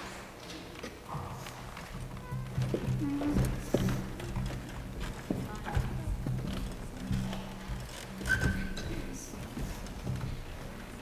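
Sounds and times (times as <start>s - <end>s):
footsteps on hollow risers: 0.4s - 11.0s
murmured voices: 1.0s - 10.0s.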